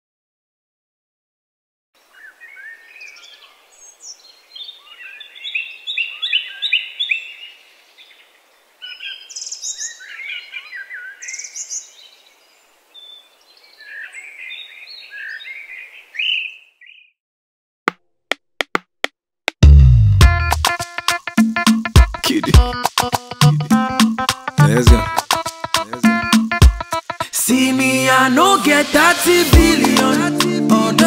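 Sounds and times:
faint outdoor hiss: 0:02.0 - 0:16.8
birds chirping and singing: 0:02.1 - 0:17.2.

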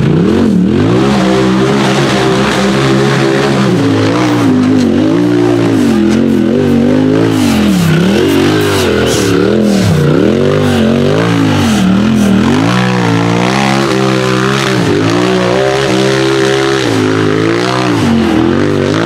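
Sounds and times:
buggy engine revving: 0:00.0 - 0:19.0.

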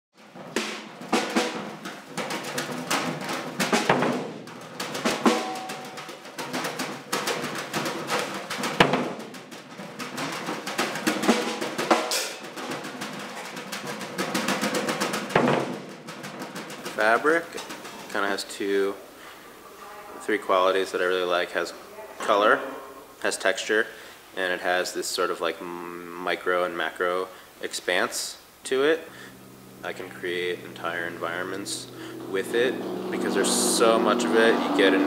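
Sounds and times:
drum kit played freely: 0:00.2 - 0:18.2, 0:28.9 - 0:32.6
cymbal crashes: 0:11.2 - 0:12.4, 0:29.1 - 0:34.5.

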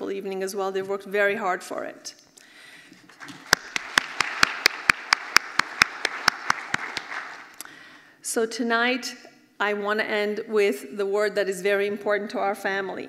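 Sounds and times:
audience applause: 0:03.1 - 0:07.6
sharp close claps: 0:03.1 - 0:07.6.

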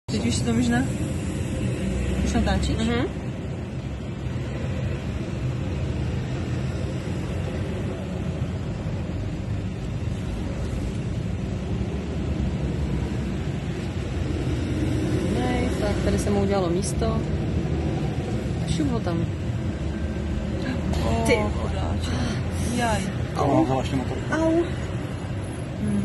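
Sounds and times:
car engine and road rumble: 0:00.0 - 0:26.0.

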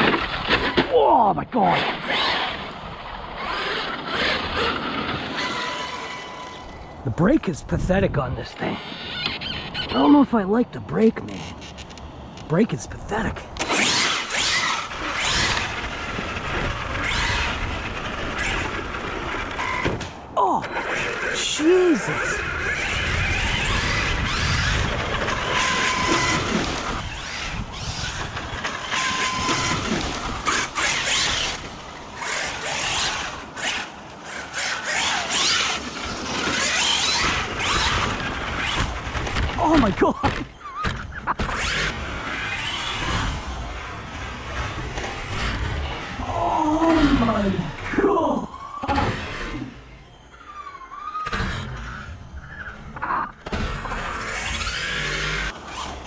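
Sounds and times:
tyres rushing over dirt: 0:00.0 - 0:07.2, 0:12.6 - 0:49.8
rc truck motor revving: 0:01.6 - 0:07.0, 0:08.5 - 0:10.2, 0:13.1 - 0:56.0.

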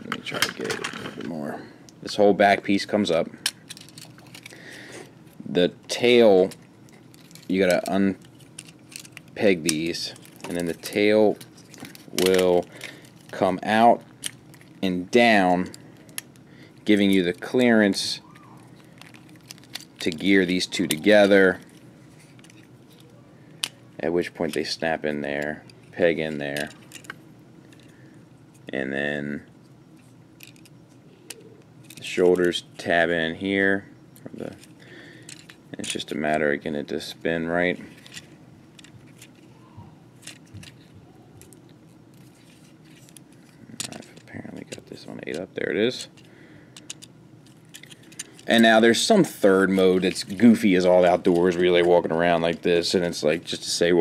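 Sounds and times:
plastic toy handling: 0:03.4 - 0:04.6, 0:06.3 - 0:17.6, 0:18.2 - 0:24.8, 0:25.4 - 0:28.7, 0:34.4 - 0:36.1, 0:37.7 - 0:39.6, 0:40.2 - 0:53.6.

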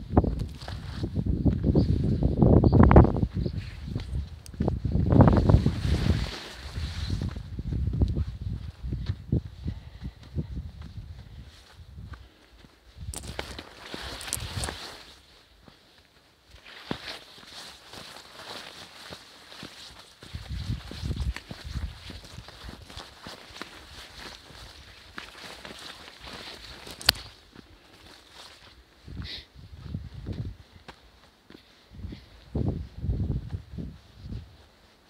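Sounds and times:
footsteps on forest trail: 0:00.2 - 0:02.4, 0:03.0 - 0:35.0
leaves and branches brushing: 0:03.6 - 0:07.5, 0:13.1 - 0:15.4, 0:16.5 - 0:28.8.

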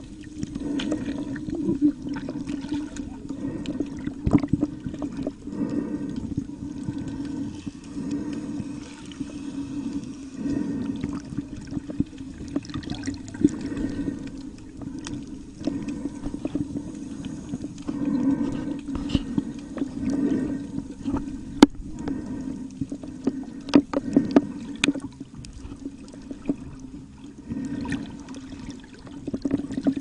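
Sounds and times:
steady low hum: 0:00.0 - 0:30.0
water sloshing and gurgling: 0:00.0 - 0:30.0.

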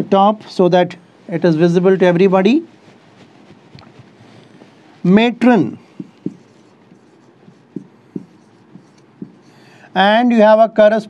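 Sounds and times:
marker pen tapping on whiteboard: 0:05.9 - 0:09.6.

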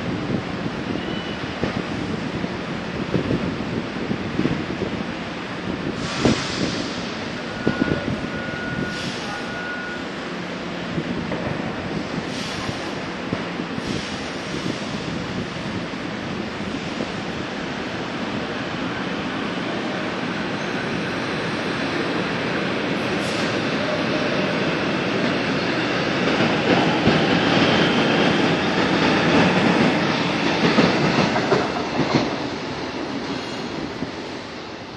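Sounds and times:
metro train running noise: 0:00.0 - 0:34.9.

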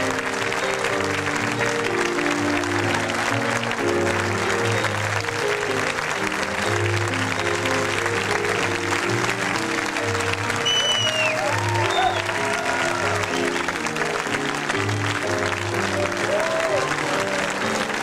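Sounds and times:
audience applauding: 0:00.0 - 0:18.0
piano and upright bass music: 0:00.0 - 0:18.0
rising and falling whistle: 0:10.6 - 0:12.5.

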